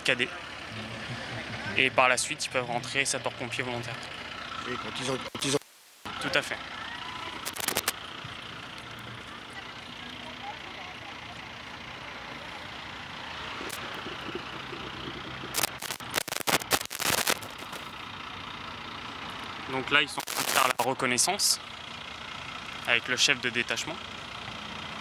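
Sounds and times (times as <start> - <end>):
fire truck engine idling: 0.0 - 5.3, 6.1 - 15.9, 17.4 - 25.0
sharp cracks and knocks: 15.5 - 17.8.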